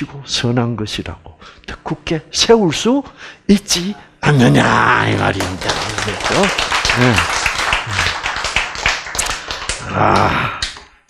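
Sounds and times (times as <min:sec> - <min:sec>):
audience clapping: 0:04.4 - 0:10.9.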